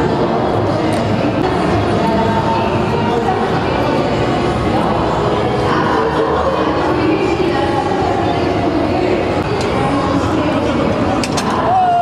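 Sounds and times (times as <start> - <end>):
crowd of voices din: 0.0 - 12.0.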